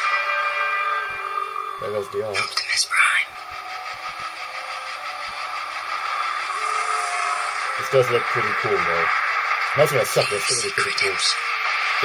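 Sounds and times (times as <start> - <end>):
droning trailer sound effects: 0.0 - 12.0.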